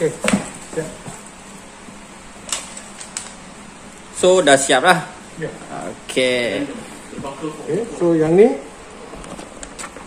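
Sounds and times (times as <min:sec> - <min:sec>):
sharp click or crinkle: 0:02.5 - 0:03.4.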